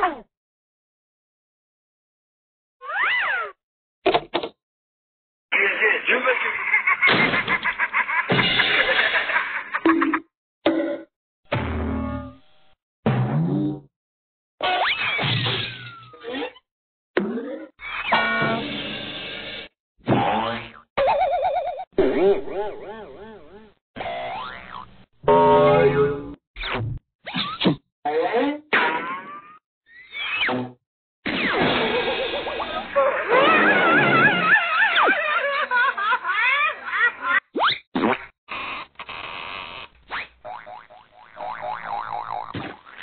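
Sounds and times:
cartoon boing sound effect: 40.5s - 43.0s.

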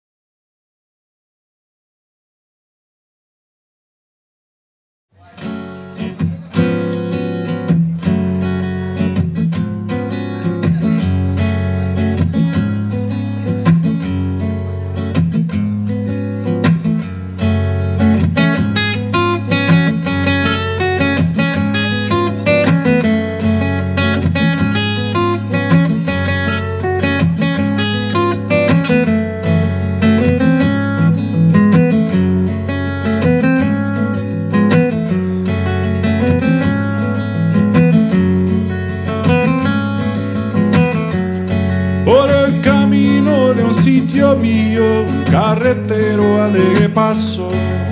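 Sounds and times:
acoustic guitar strummed and plucked: 5.2s - 47.9s.

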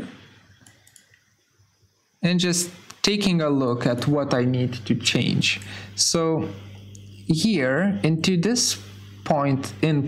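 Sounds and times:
computer mouse clicks: 0.5s - 1.2s
keyboard clicks: 0.6s - 1.2s.

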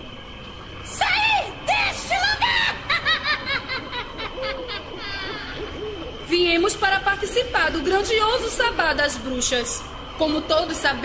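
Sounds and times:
witch's cackling laugh: 2.4s - 5.8s.

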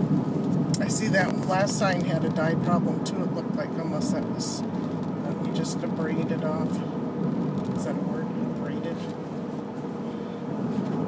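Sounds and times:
car road noise rumble: 0.0s - 11.0s.

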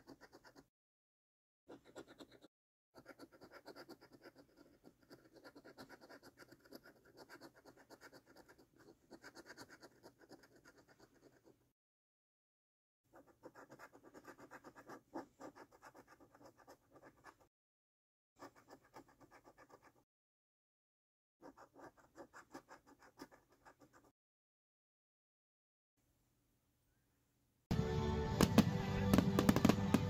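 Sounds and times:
coin scratching a scratch card: 0.0s - 0.7s, 1.7s - 11.6s, 13.1s - 17.5s, 18.4s - 20.0s, 21.4s - 24.1s.

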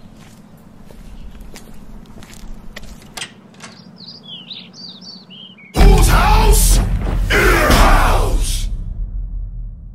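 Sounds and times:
small birds chirping: 0.0s - 6.0s
person shouting: 5.8s - 8.7s.

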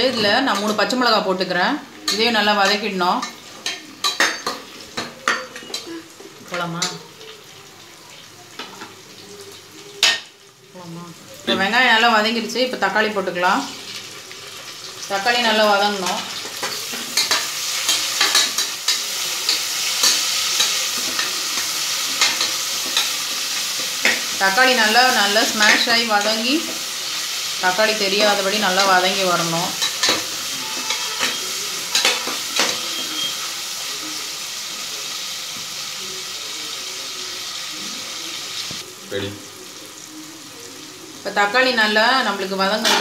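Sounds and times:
onions sizzling in hot oil: 0.0s - 43.0s
metal spatula scraping pot: 28.2s - 33.4s.

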